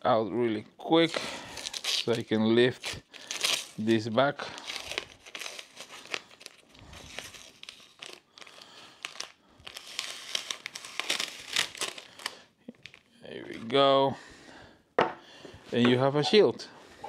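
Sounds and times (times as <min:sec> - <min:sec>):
tape peeling and crumpling: 0:01.0 - 0:13.8.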